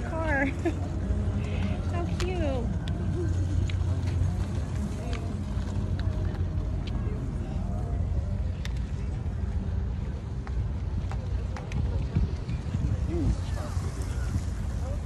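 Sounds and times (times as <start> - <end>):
people's voices: 0.0 - 15.0.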